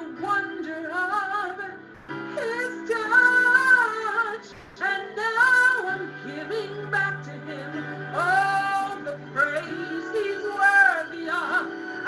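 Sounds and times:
woman singing gospel solo: 0:00.0 - 0:12.0.

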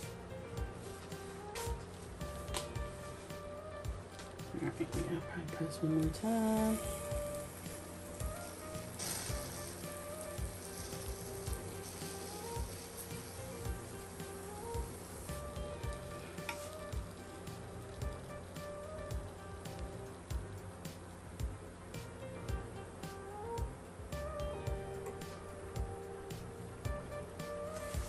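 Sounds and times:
soft background music with beat: 0:00.0 - 0:28.0
dough sizzling in waffle iron: 0:06.1 - 0:21.4, 0:27.4 - 0:28.0.

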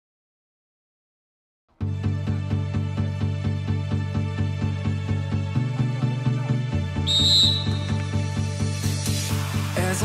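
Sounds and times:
pop music with steady beat: 0:03.4 - 0:10.0
referee's whistle blast: 0:07.0 - 0:08.1.

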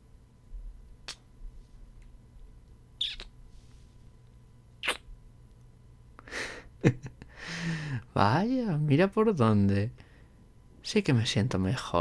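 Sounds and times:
soft hummed mm: 0:00.0 - 0:12.0
wet kiss smacks: 0:01.0 - 0:01.2, 0:03.0 - 0:03.3, 0:04.8 - 0:05.1
breaths: 0:07.3 - 0:08.1, 0:10.0 - 0:10.5.

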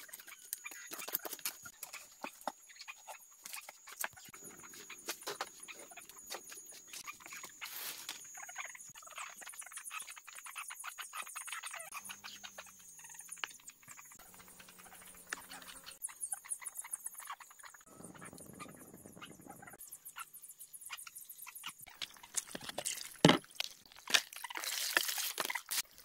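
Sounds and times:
fish clicking and splashing in a tub: 0:21.9 - 0:26.0.

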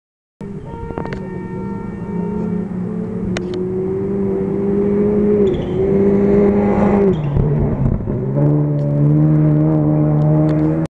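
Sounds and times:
rally car engine approaching: 0:00.4 - 0:10.9.

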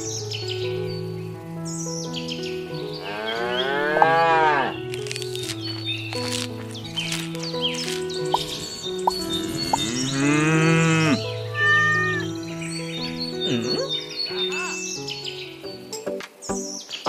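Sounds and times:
light background music: 0:00.0 - 0:17.0
cow mooing: 0:03.0 - 0:04.8, 0:09.4 - 0:12.3.

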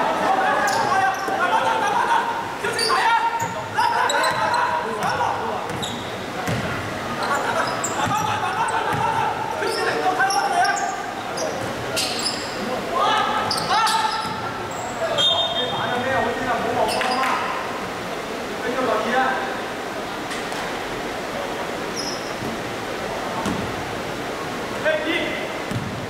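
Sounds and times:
players calling out: 0:00.0 - 0:16.2
short high shoe squeaks: 0:05.7 - 0:06.2, 0:09.7 - 0:12.6, 0:22.0 - 0:22.4.

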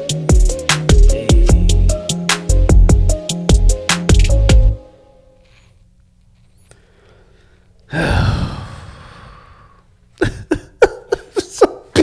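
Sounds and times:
man sighing: 0:07.0 - 0:10.7.

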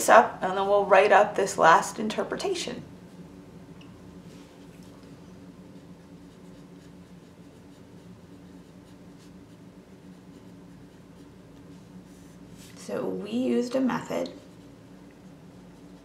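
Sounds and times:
steady low hum: 0:00.0 - 0:16.0
pen scratching on paper: 0:05.7 - 0:12.4.

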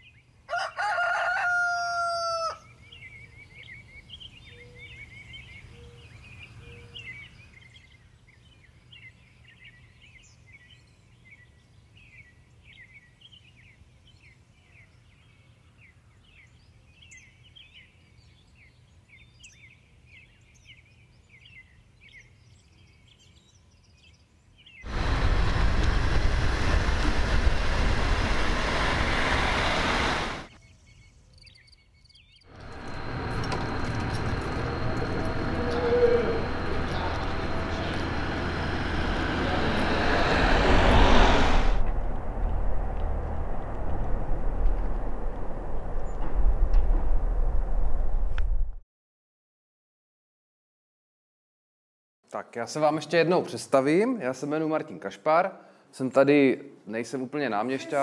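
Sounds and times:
rooster crowing: 0:00.5 - 0:02.7, 0:32.6 - 0:41.0
small birds chirping: 0:02.6 - 0:24.9, 0:30.5 - 0:39.2
diesel railcar passing: 0:24.9 - 0:30.5, 0:32.5 - 0:46.0.

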